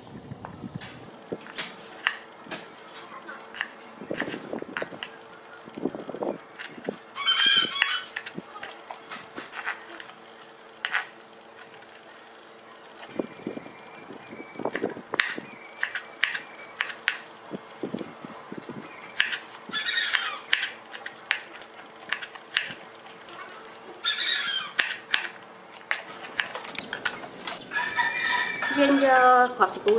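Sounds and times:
loud squawking animal call: 7.2 - 8.2, 19.7 - 20.6, 24.0 - 24.9.

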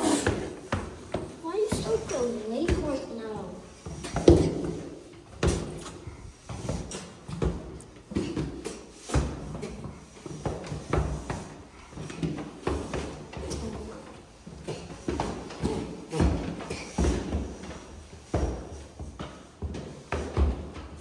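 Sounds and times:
footsteps walking down stairs: 0.0 - 21.0.

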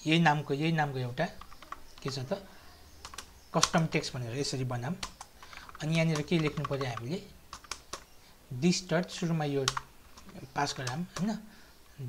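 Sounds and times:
person speaking: 0.0 - 12.0
computer keyboard key clicks: 3.0 - 3.8, 5.0 - 8.1.

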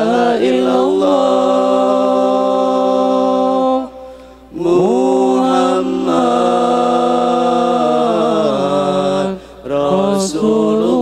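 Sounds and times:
boys singing a cappella: 0.0 - 11.0.

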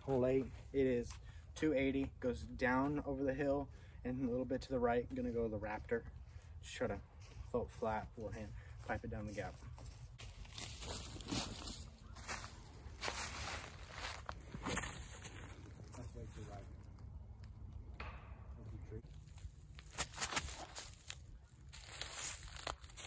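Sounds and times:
footsteps crunching dry leaves: 7.1 - 17.0, 19.0 - 23.0.

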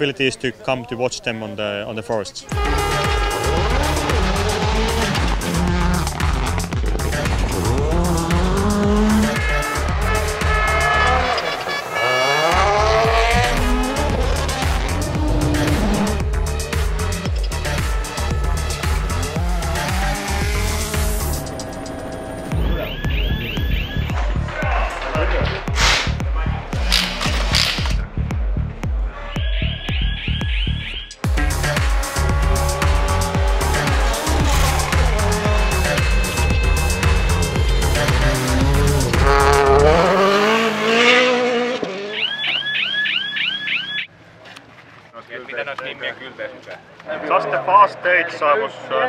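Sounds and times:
background music with steady beat: 2.1 - 40.6
rally car engine revving: 2.6 - 24.4, 31.2 - 42.4.

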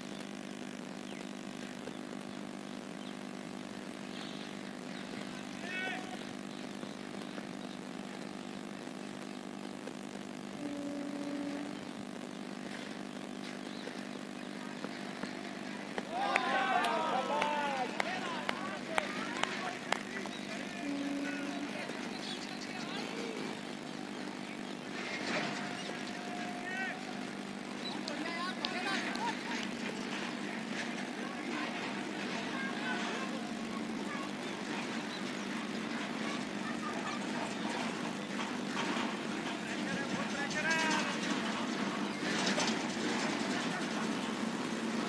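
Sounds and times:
distant players calling and chatting: 0.0 - 45.0.

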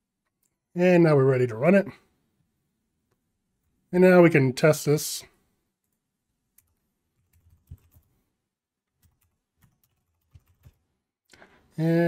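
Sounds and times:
faint typing on keyboard: 5.8 - 11.5.

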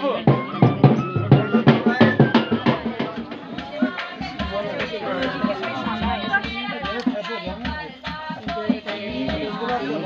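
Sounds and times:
dhol drumming: 0.0 - 10.0
people singing: 0.0 - 10.0.

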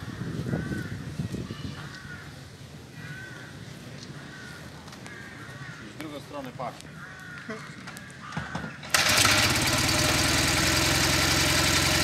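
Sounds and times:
motorcycle engine kick-started: 8.6 - 12.0
motorcycle engine idling: 8.9 - 12.0.

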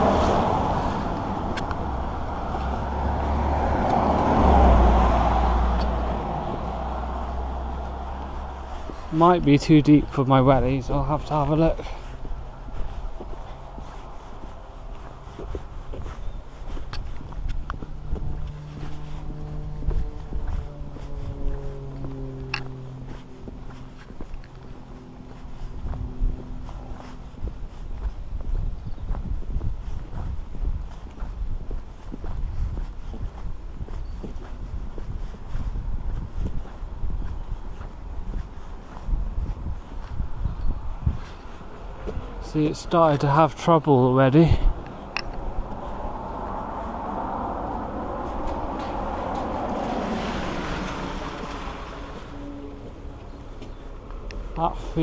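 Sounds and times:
boot footsteps on wet pavement: 0.0 - 55.0.

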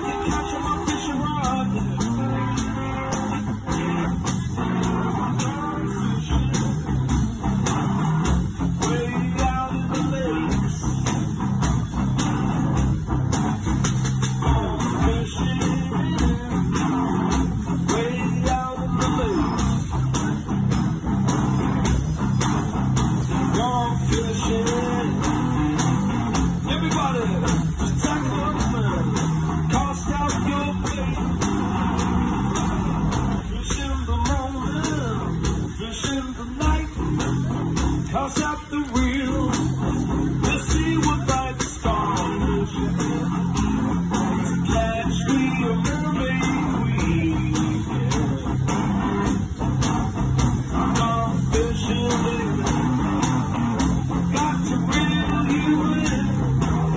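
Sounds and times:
blues electric guitar: 0.0 - 56.9
low bass line: 0.0 - 56.9
steady drum beat: 0.0 - 56.9.

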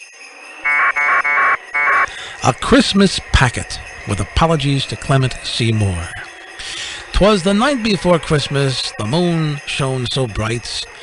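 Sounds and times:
buzzing data tones: 0.6 - 4.0.

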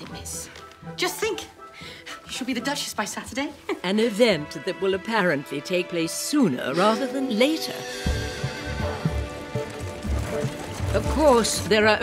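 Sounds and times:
orchestral film score music: 0.0 - 12.0
horse hooves clopping on dirt: 7.9 - 12.0.

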